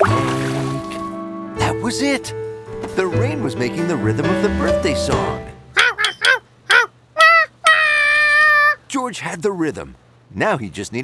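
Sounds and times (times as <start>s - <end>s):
cartoon monkey calling: 5.7s - 8.9s.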